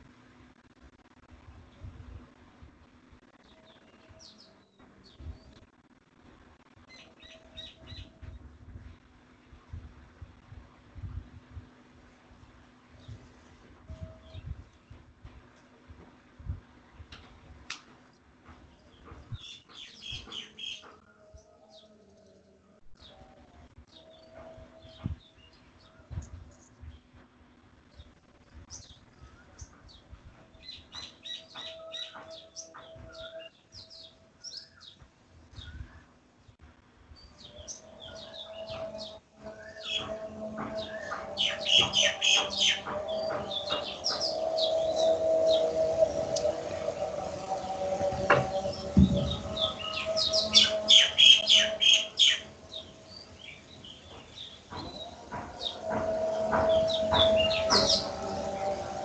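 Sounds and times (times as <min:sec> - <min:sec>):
small birds chirping: 0:18.6 - 0:22.4, 0:27.8 - 0:59.0.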